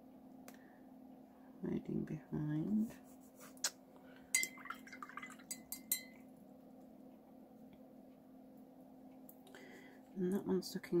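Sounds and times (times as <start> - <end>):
brush clinking against glass: 4.4 - 6.2.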